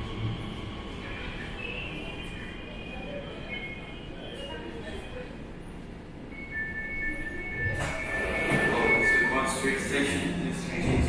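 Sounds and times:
train low rumble: 0.0s - 6.3s
high alert tones: 6.4s - 9.6s.

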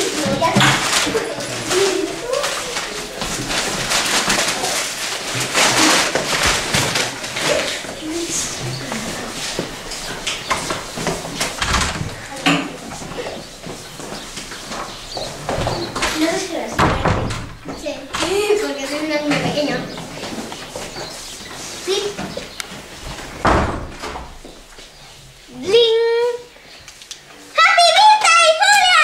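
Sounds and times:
knocks and clatter: 0.0s - 21.2s, 22.0s - 24.7s
children chattering: 0.0s - 23.8s, 24.9s - 29.0s.

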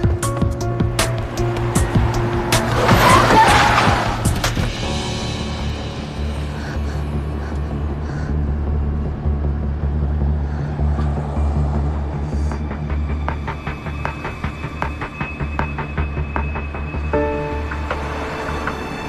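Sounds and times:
low drone music: 0.0s - 19.0s.

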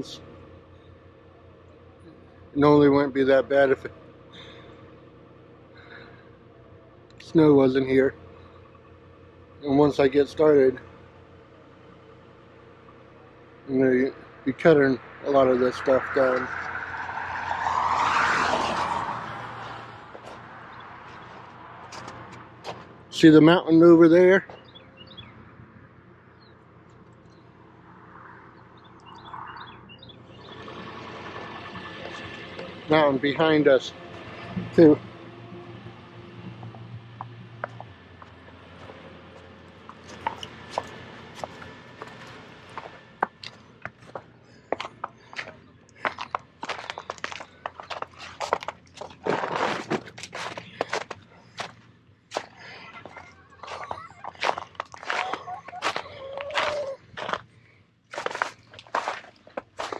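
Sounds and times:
vehicle approaching on road: 0.0s - 59.9s
small birds chirping: 8.1s - 14.4s, 24.4s - 25.5s, 28.3s - 30.9s, 41.4s - 48.8s
footsteps crunching through snow: 44.8s - 57.5s, 58.1s - 59.9s.

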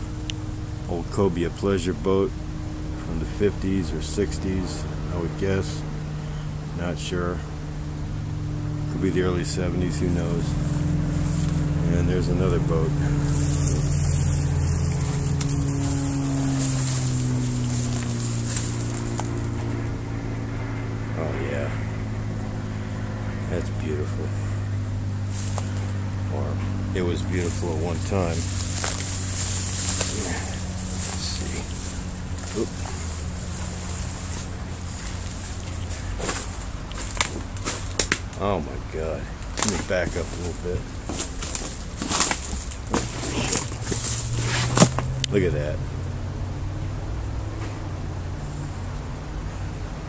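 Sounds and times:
low rumble: 0.0s - 49.6s
low engine-like drone: 0.0s - 50.0s
footsteps through dry leaves: 9.0s - 19.9s, 24.6s - 38.4s, 39.4s - 45.2s
twigs snapping: 10.5s - 11.9s, 12.9s - 19.9s, 25.2s - 26.0s, 26.7s - 38.4s, 39.3s - 45.4s.

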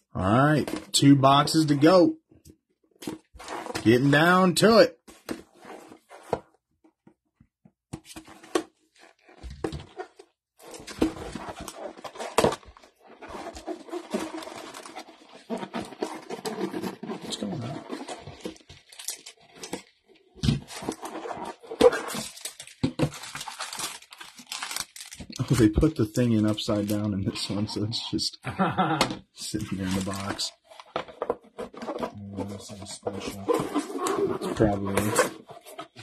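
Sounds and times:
cardboard box being opened: 8.1s - 19.9s, 20.6s - 25.2s
shrink wrap crinkling and tearing: 10.7s - 20.0s, 20.6s - 27.1s, 29.6s - 30.4s
foil packs shuffling: 20.6s - 25.6s, 29.7s - 30.4s.

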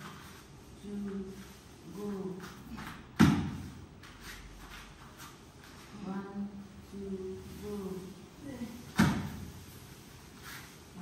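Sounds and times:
thump on foam mat: 3.2s - 3.6s, 8.9s - 9.4s.

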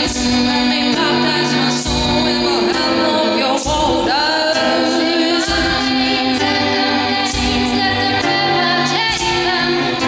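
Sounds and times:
acoustic guitar: 0.0s - 10.0s
women singing in harmony: 0.0s - 10.0s.

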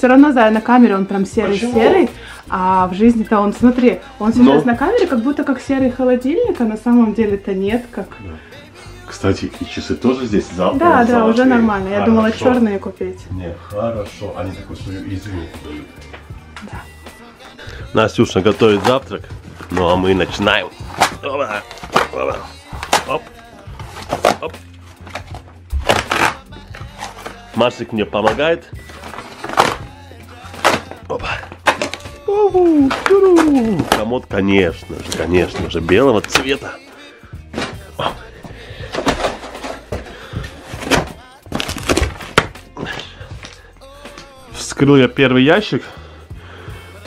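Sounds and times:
background music: 0.0s - 47.0s
cardboard and panels rustling: 18.2s - 32.2s, 32.8s - 36.6s, 37.5s - 43.6s
cardboard box tearing: 23.9s - 27.4s, 40.6s - 42.5s.

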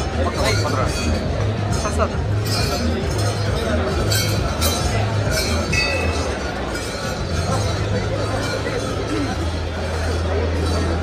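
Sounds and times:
crowd chatter: 0.0s - 11.0s
metallic clinks: 2.4s - 11.0s.

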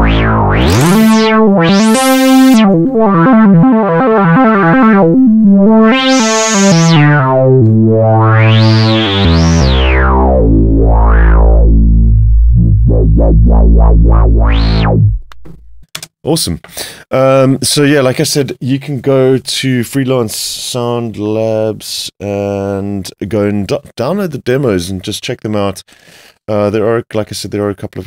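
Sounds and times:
low synth bass note: 0.0s - 15.8s
synth bass with filter sweeps: 0.0s - 15.8s.

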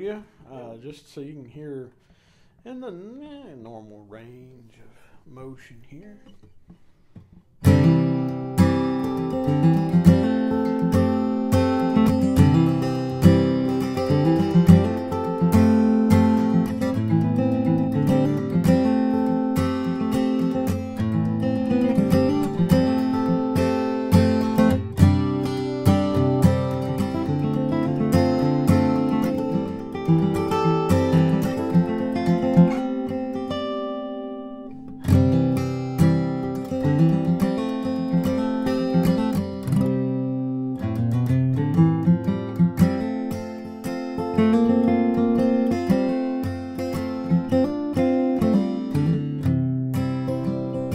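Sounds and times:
acoustic guitar picking and strumming: 5.5s - 50.9s.

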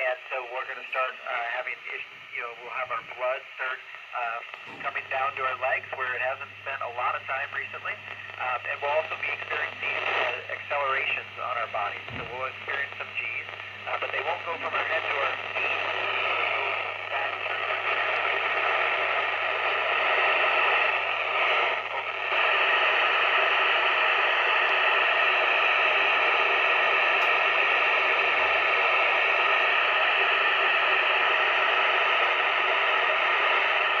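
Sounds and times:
radio receiver static hiss: 0.0s - 34.0s.

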